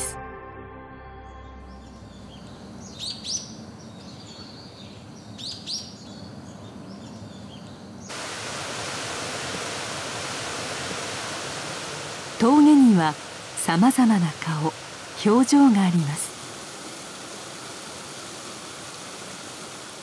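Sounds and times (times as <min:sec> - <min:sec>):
bird calls: 0:01.8 - 0:08.1
low steady hiss: 0:01.8 - 0:20.0.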